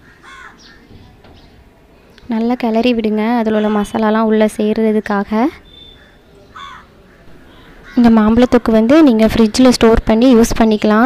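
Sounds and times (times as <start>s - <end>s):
crow cawing: 0.0s - 1.0s, 5.7s - 8.6s
faint high bird chirps: 5.0s - 8.6s.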